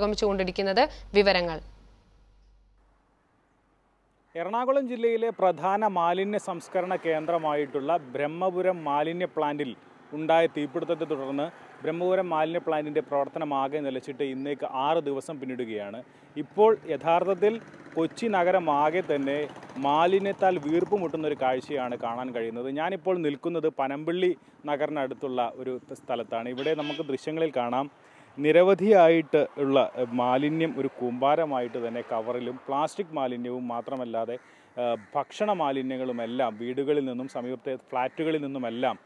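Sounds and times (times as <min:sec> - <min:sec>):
woman speaking: 0:00.0 - 0:01.7
man talking into a microphone: 0:18.2 - 0:39.0.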